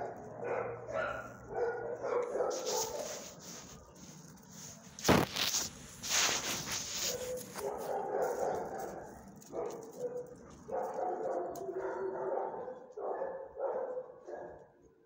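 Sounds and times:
dogs barking and whining: 0.0 - 3.3, 7.1 - 14.7
rustling scuff: 2.2 - 10.1.

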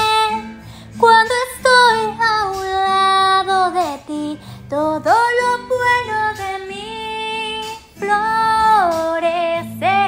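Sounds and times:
faint instrumental accompaniment: 0.0 - 10.0
woman singing a ballad: 0.0 - 10.0.

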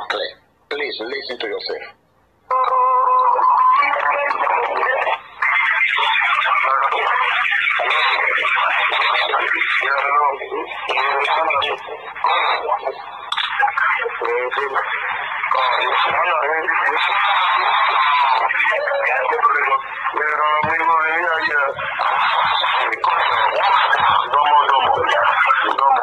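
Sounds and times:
men talking over telephone: 0.0 - 2.0, 3.8 - 26.0
steady phone tone: 2.5 - 4.7, 17.6 - 20.8.

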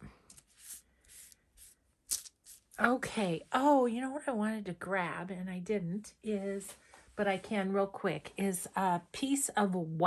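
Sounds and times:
wipe swishing on plastic sheet: 0.3 - 2.8.

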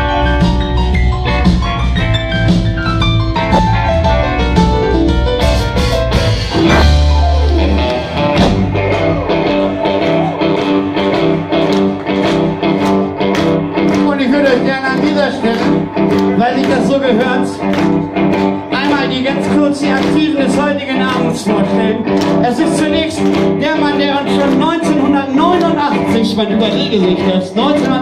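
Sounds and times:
heavy deep low end: 0.0 - 14.8
drums: 0.0 - 28.0
electric guitars: 0.0 - 28.0
keyboard: 0.0 - 28.0.

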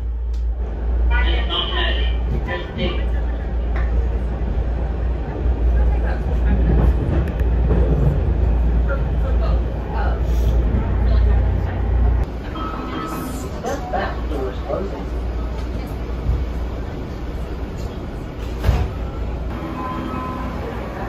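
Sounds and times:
train car rumbling on track: 0.0 - 21.0.

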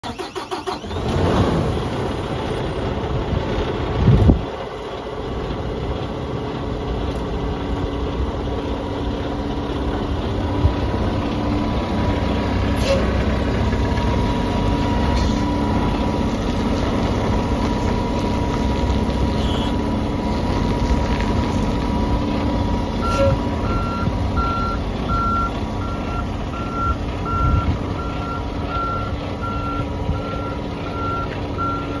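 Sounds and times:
diesel truck engine idling: 0.0 - 32.0
truck backup alarm beeping: 19.3 - 19.9, 22.1 - 32.0.

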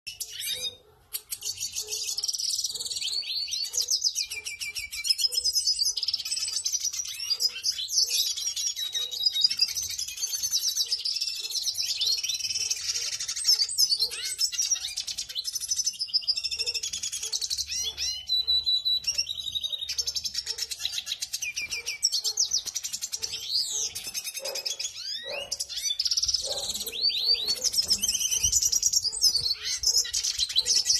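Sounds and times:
birds twittering song: 0.0 - 30.9.

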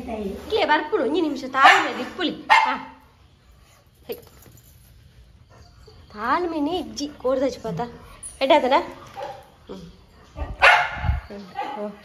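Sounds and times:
dog barking: 1.6 - 3.0, 9.2 - 9.5, 10.4 - 12.0.

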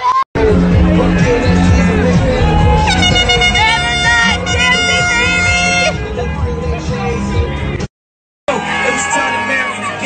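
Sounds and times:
loud party music: 0.0 - 7.9
horn long steady note: 0.4 - 6.4
voices: 0.5 - 7.6.

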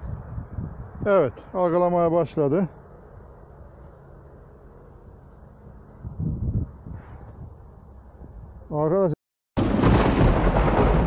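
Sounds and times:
wind rumbling on microphone: 0.0 - 1.4, 5.9 - 8.7
man speaking: 1.0 - 2.8, 8.7 - 9.2.

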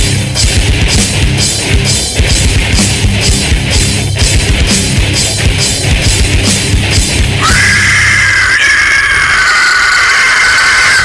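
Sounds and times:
heavy metal music: 0.0 - 11.0
high-pitched guitar squeal: 7.3 - 11.0.

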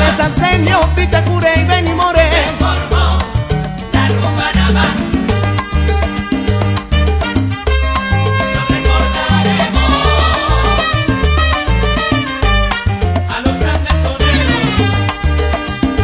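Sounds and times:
salsa band instrumental: 0.0 - 16.0
sharp percussion: 3.6 - 16.0
repeating bass line: 8.4 - 12.6.

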